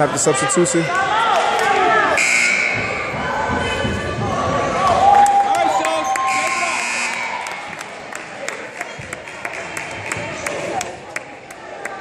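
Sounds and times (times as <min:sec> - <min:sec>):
voices of players and spectators: 0:00.0 - 0:12.0
scoreboard buzzer: 0:02.2 - 0:03.0, 0:06.3 - 0:07.3.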